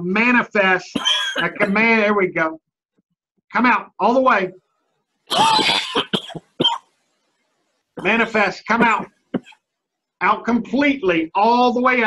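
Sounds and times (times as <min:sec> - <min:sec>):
man coughing: 0:01.0 - 0:01.9, 0:05.3 - 0:06.8, 0:08.0 - 0:09.6.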